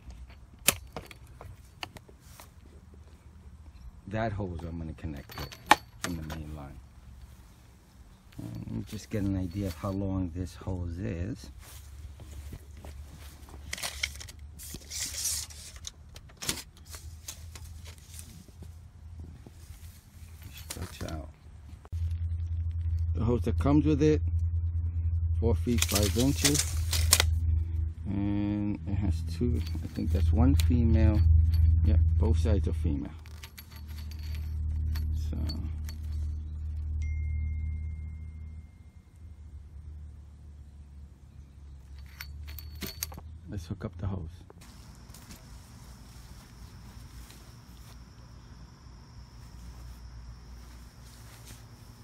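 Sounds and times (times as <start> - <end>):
low steady hum: 0.0 - 52.0
metal fittings clinking: 3.6 - 6.8, 8.3 - 10.6, 25.7 - 27.4, 29.3 - 32.4, 33.0 - 37.7, 41.7 - 43.4
garden hose rustling through grass: 11.4 - 15.9, 16.6 - 22.0, 25.7 - 27.2, 44.6 - 48.6, 49.2 - 52.0
low rumble: 21.3 - 43.4
thin high tone: 33.4 - 39.7, 44.6 - 52.0
footsteps: 44.5 - 48.4, 49.3 - 52.0.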